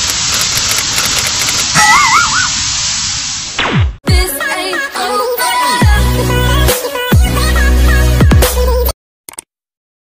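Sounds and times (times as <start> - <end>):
television static hiss: 0.0 - 3.6.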